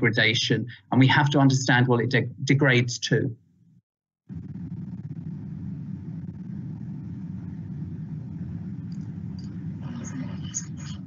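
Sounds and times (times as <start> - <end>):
low rumble of room noise: 4.3 - 11.0.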